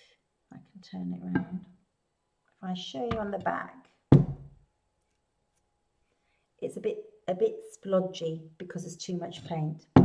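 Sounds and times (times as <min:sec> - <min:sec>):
ceramic plate knocking on wood: 0:03.1 - 0:03.4, 0:04.1 - 0:04.5.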